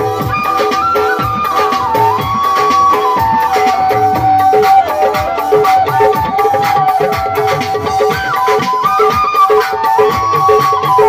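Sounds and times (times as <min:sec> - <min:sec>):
hand drum beat: 0:00.0 - 0:11.0
sliding held melody: 0:00.0 - 0:11.0.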